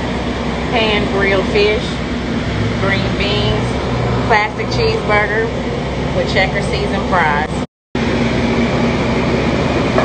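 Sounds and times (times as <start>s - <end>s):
kitchen machinery droning: 0.0s - 10.0s.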